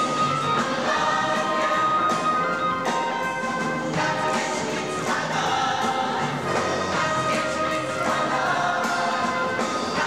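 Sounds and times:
instrumental accompaniment: 0.0 - 10.0
choir singing: 0.4 - 2.5, 3.8 - 10.0.

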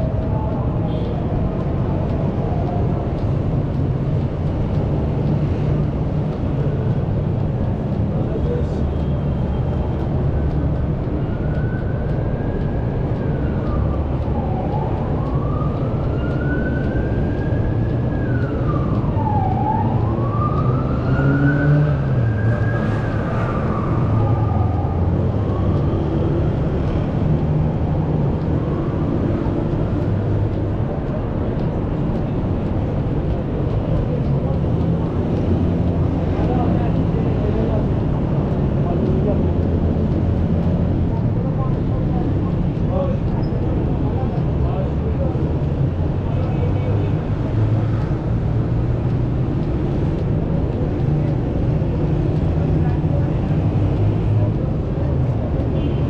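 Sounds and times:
emergency siren wailing: 0.0 - 42.9
city traffic: 0.0 - 56.0.

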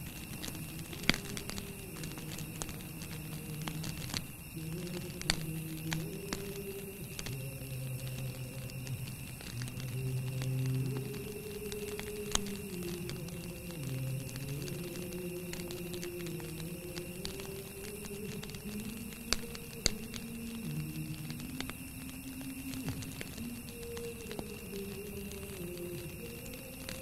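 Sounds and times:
faint steady high tone: 0.0 - 27.0
slow soundtrack music: 0.4 - 27.0.

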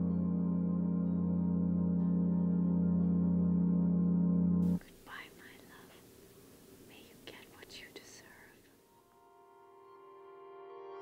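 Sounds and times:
ambient music: 0.0 - 4.8, 8.9 - 11.0
faint room hiss: 0.0 - 11.0
quiet whispering: 4.7 - 8.9.

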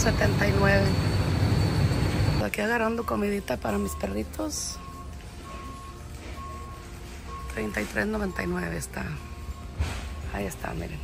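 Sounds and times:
electronic alarm beeping: 0.0 - 11.0.

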